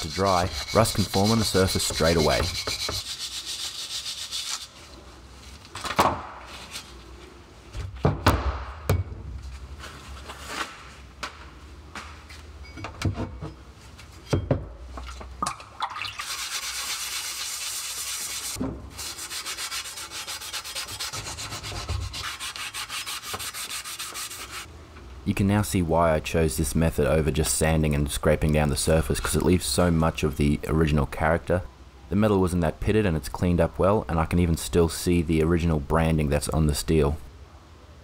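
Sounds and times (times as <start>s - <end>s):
scouring pad scrubbing metal: 0.0s - 4.6s, 16.2s - 24.7s.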